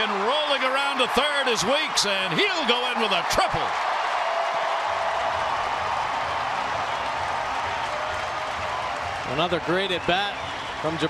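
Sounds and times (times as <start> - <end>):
stadium crowd cheering and applauding: 0.0 - 11.0.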